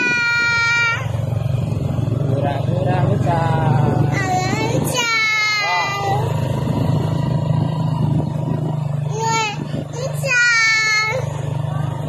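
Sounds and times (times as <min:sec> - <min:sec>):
road and wind noise: 0:00.0 - 0:12.0
small motorcycle engine running: 0:00.0 - 0:12.0.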